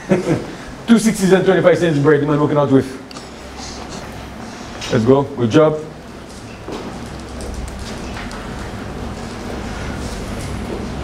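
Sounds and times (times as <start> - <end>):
low hum: 5.9 - 11.0.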